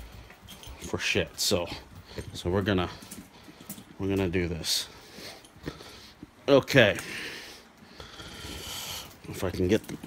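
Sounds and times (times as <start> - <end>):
man breathing close to microphone: 1.7 - 4.0, 4.8 - 6.3, 7.0 - 9.3.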